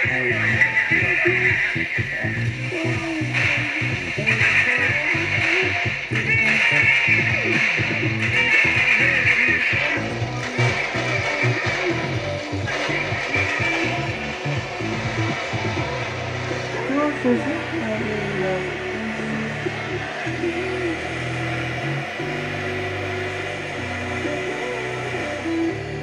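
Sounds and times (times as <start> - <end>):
pop music on radio: 0.0 - 26.0.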